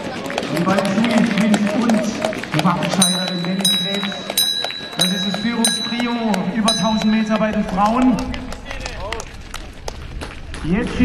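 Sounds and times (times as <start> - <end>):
announcer speaking: 0.6 - 8.5
hand bell ringing: 2.9 - 7.8.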